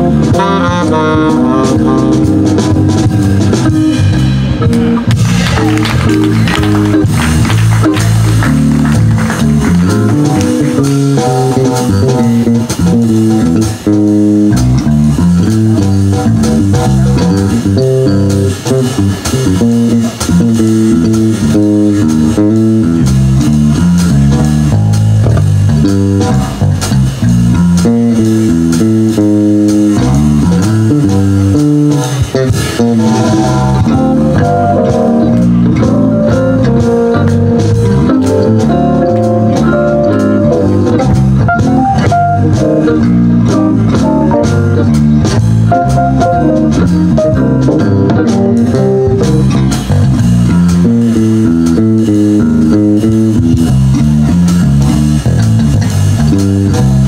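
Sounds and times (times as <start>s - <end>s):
electric bass guitar plucking: 0.0s - 57.0s
live jazz band playing: 0.0s - 57.0s.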